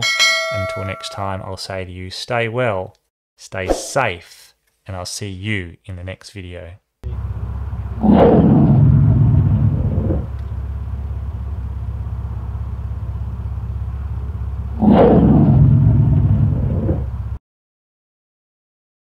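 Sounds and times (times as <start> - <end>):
steady low rumble: 7.1 - 17.4
big cat roar: 8.0 - 10.3, 14.8 - 17.1.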